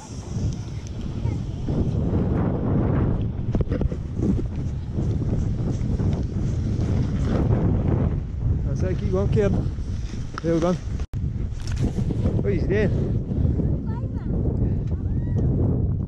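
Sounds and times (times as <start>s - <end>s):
snowboard sliding over snow: 0.0s - 11.0s
wind buffeting microphone: 0.0s - 16.0s.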